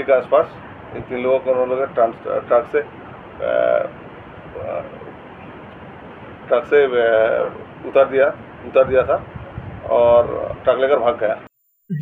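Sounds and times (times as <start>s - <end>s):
steady room hiss: 0.0s - 12.0s.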